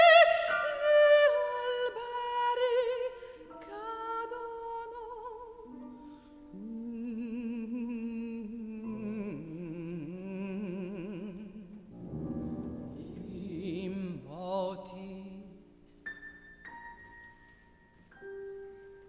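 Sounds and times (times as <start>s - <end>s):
slow contemporary classical music: 0.0s - 19.0s.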